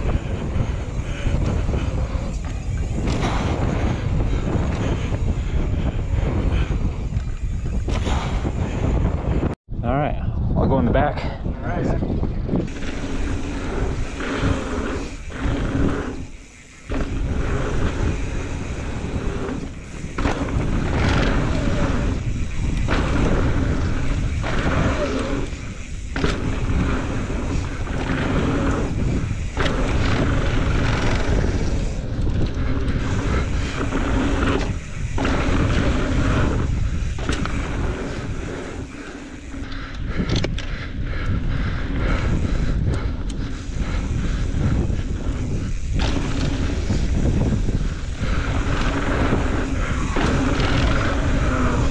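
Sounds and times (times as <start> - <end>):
bike tyres rolling on dirt: 0.0 - 9.6, 12.0 - 51.9
wind rushing over microphone: 0.0 - 51.9
bike knocking over bumps: 14.3 - 38.8, 45.9 - 47.6, 48.4 - 51.9.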